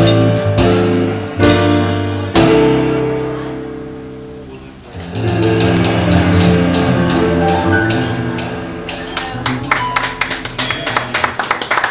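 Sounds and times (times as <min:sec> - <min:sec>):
jazz combo playing: 0:00.0 - 0:11.8
percussion hits: 0:04.9 - 0:11.9.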